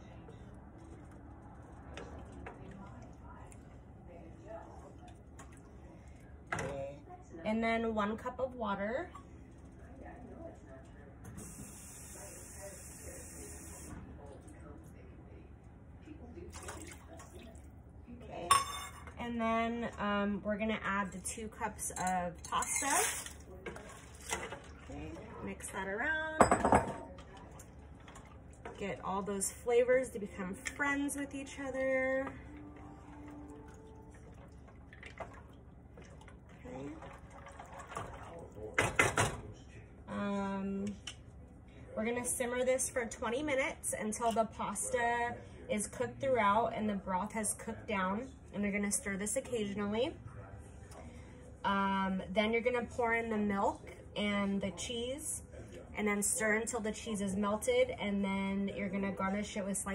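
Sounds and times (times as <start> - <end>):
broth and pasta sloshing: 22.9 - 25.6, 32.6 - 38.8
tap water filling a cup: 33.2 - 39.3.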